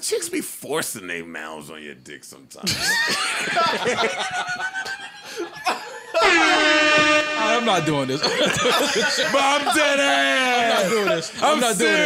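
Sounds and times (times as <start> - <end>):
men laughing hard: 2.7 - 7.4, 8.1 - 12.0.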